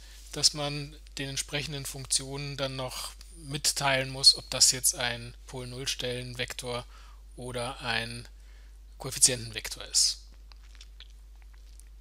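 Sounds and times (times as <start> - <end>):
steady low hum: 0.0 - 12.0
man's voice: 9.0 - 10.2.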